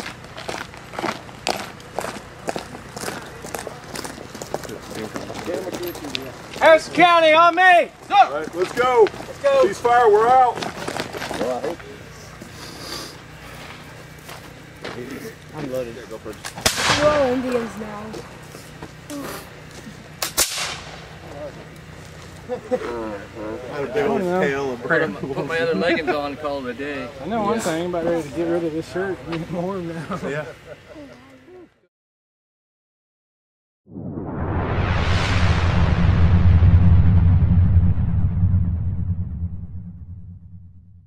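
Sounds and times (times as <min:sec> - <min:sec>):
musket shots: 0:16.6 - 0:17.7, 0:20.2 - 0:21.1
short gunshot echo: 0:16.6 - 0:17.7, 0:20.4 - 0:21.0
low rumbling drone: 0:16.6 - 0:19.0, 0:33.9 - 0:41.0
synthesized whoosh: 0:33.9 - 0:41.0.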